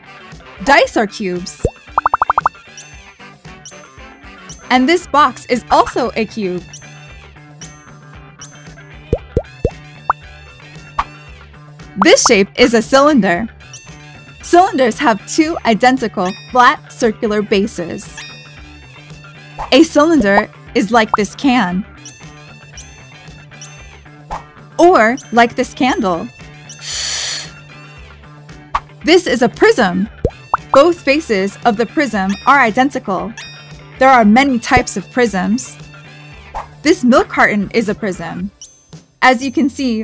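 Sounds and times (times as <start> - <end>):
light background music: 0.0 - 40.0
cartoon plop pops: 1.6 - 2.5, 9.2 - 9.8.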